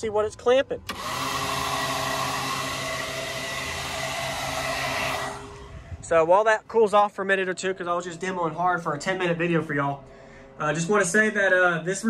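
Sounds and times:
blower fans whirring: 0:00.2 - 0:12.0.

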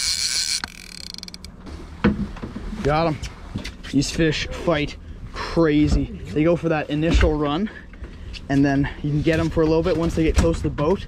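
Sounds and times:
fishing reel buzzing and clicking: 0:00.0 - 0:01.5.

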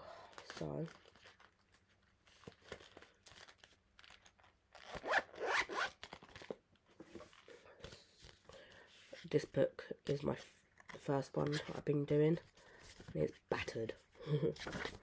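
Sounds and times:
handling rustles and clicks: 0:00.3 - 0:04.9
zip pulled along pouch: 0:04.7 - 0:06.1.

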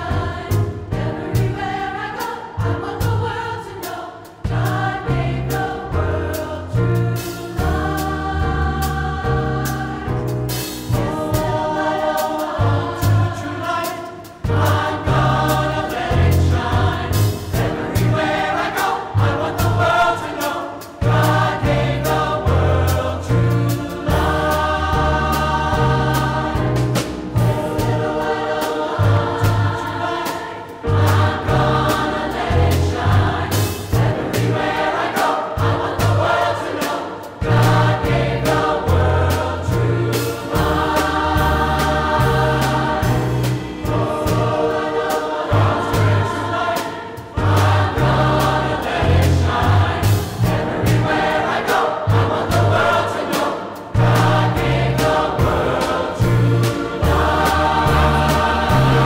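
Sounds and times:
instrumental accompaniment: 0:00.0 - 0:59.0
mixed choir singing: 0:00.0 - 0:59.0.

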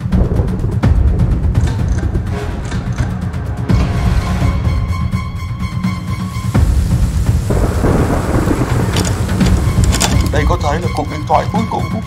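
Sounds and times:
heavy rain: 0:00.0 - 0:03.3, 0:05.6 - 0:11.3
thunder rumbling: 0:00.0 - 0:03.7, 0:06.8 - 0:10.9.

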